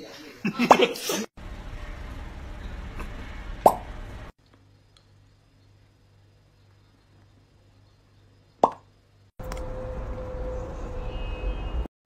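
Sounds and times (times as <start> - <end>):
mouth pop: 3.0 - 3.8, 8.6 - 8.9.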